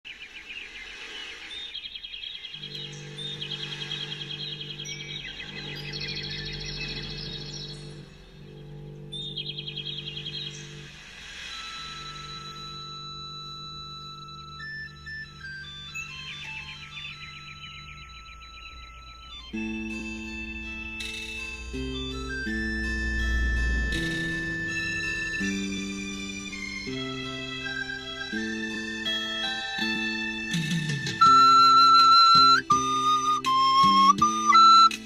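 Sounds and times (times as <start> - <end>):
high bird-like chirping trills: 0.1 - 26.3
low synth chords: 2.6 - 35.0.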